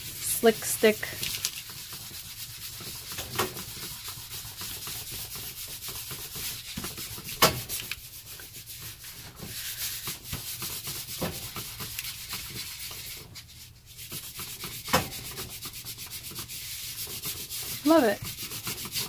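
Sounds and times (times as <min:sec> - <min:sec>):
towel rubbing over paper: 0:00.0 - 0:19.0.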